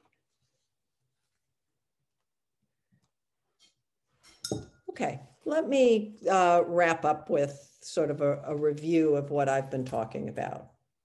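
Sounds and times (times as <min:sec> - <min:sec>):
sharp clink with ringing note: 0:04.4 - 0:04.8.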